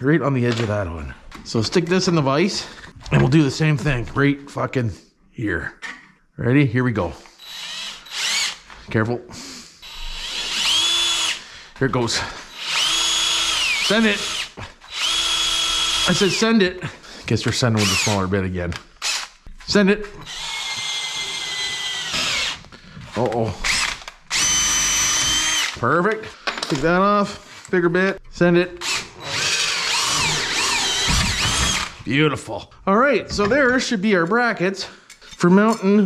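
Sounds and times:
electric drill boring metal: 0:07.4 - 0:08.6, 0:09.8 - 0:11.4, 0:12.5 - 0:16.5, 0:17.8 - 0:18.2, 0:19.0 - 0:19.4, 0:20.2 - 0:22.7, 0:23.6 - 0:25.8, 0:28.8 - 0:32.0.

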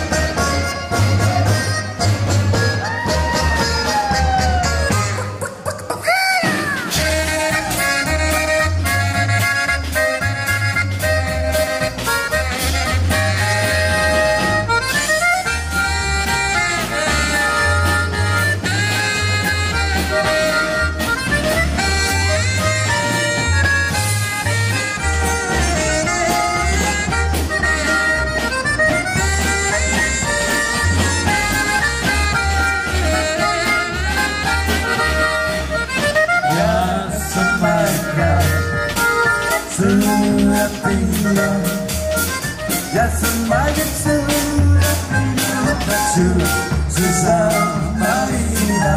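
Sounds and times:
polka band playing: 0:00.0 - 0:48.9
snare drum and cymbals: 0:06.4 - 0:48.9.

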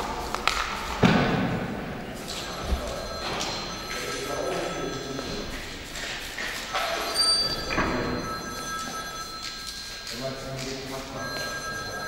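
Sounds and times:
person speaking: 0:02.2 - 0:12.0
telephone ringing: 0:02.2 - 0:12.0.

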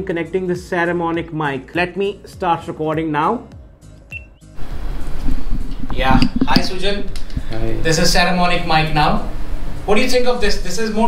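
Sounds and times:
short high electronic beep: 0:04.1 - 0:04.4.

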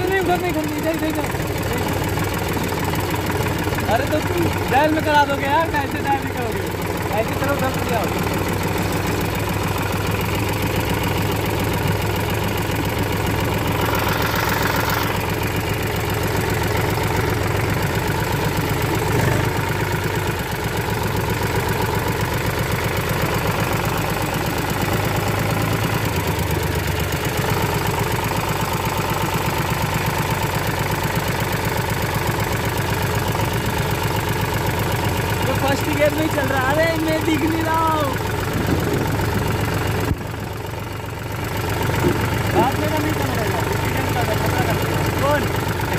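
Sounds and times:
tractor diesel engine running: 0:00.0 - 0:45.9.

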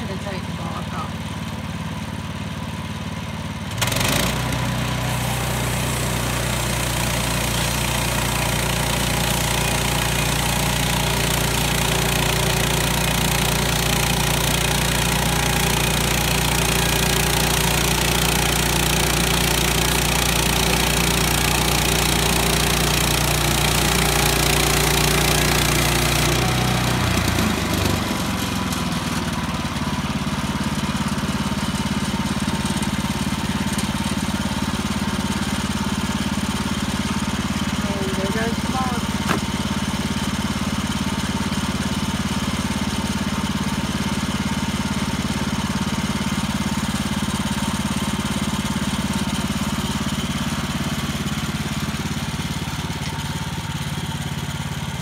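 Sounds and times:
gas engine running: 0:00.0 - 0:55.0.

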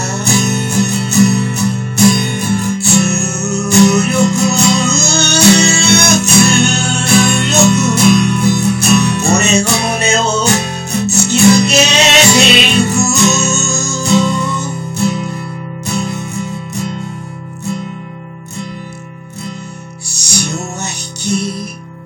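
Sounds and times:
guitar over steady beat: 0:00.0 - 0:22.0.

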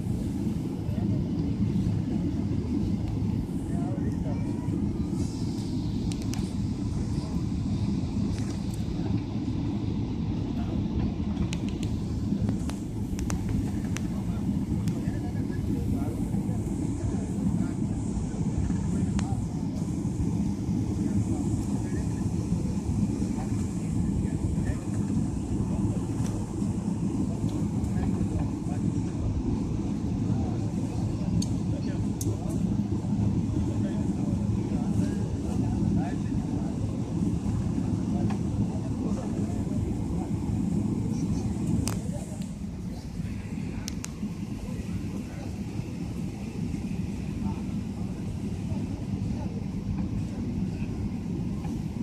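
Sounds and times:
airplane cabin engine drone: 0:00.0 - 0:52.0
faint voices in cabin: 0:00.0 - 0:52.0.

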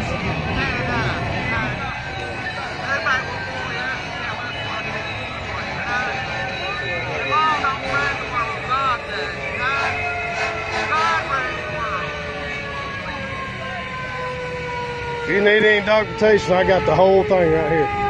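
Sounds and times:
vehicle engine droning: 0:00.0 - 0:18.0.

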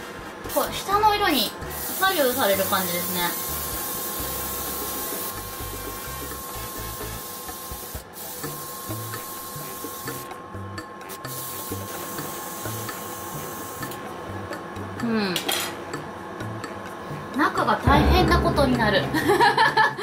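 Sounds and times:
airbrush spraying hiss: 0:01.6 - 0:10.2, 0:11.3 - 0:13.9.

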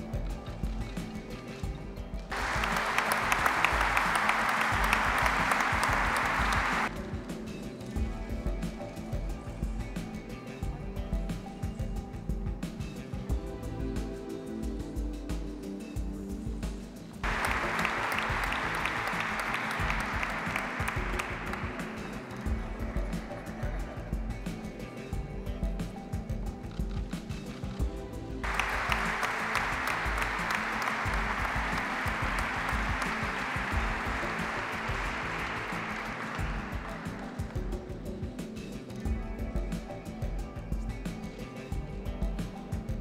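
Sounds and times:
background music: 0:00.0 - 0:43.0
audience applause: 0:02.3 - 0:07.0, 0:17.2 - 0:23.8, 0:28.4 - 0:37.7.

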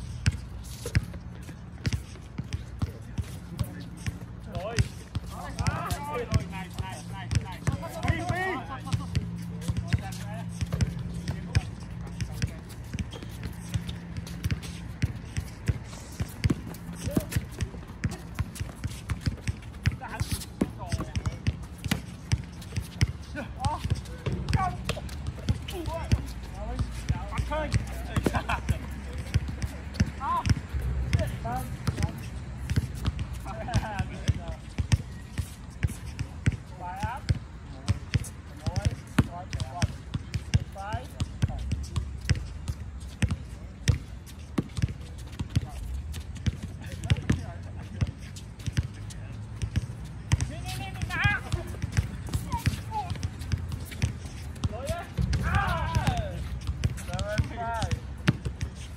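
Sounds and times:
players shouting: 0:05.3 - 0:09.1, 0:23.3 - 0:29.0, 0:50.4 - 0:53.2, 0:54.7 - 0:56.5
basketball bouncing on hard court: 0:09.1 - 0:28.5, 0:43.2 - 0:47.5, 0:49.6 - 0:58.6.

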